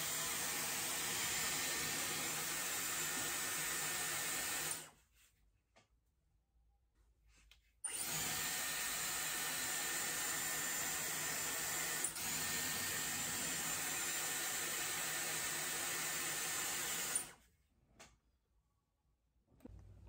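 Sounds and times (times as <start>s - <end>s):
hair styler blowing air: 0.0s - 4.9s.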